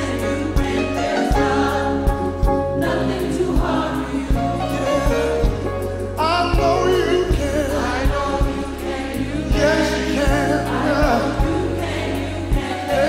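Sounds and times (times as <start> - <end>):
gospel choir singing: 0.0 - 13.0
instrumental backing with bass and beat: 0.0 - 13.0.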